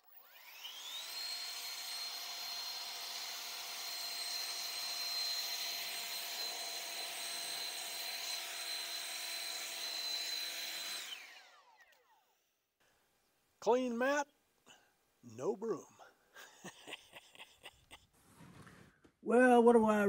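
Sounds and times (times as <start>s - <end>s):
leaf blower whine and rushing air: 0.0s - 12.2s.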